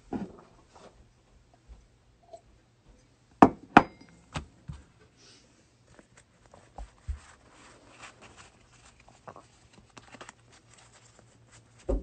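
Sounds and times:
cards rustling: 5.9 - 11.9.

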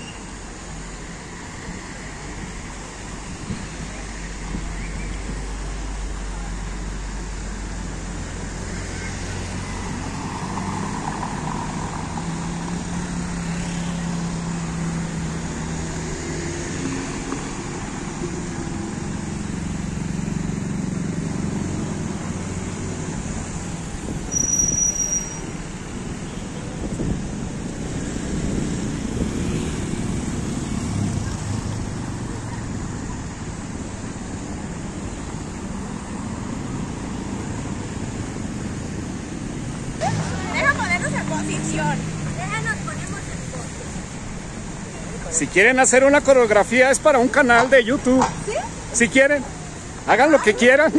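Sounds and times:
cars driving slowly past: 0.0 - 50.9.

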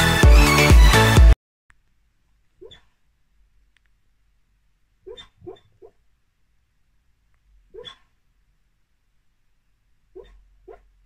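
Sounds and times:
small dog hiccuping: 2.6 - 3.0, 5.0 - 6.0, 7.7 - 8.1, 10.1 - 10.9.

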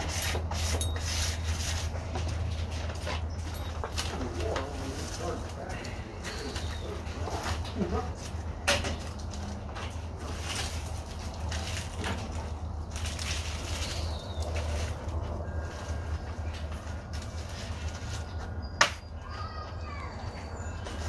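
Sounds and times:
rustling and soil falling: 0.6 - 18.6
birds calling: 5.2 - 9.3, 12.4 - 21.0.

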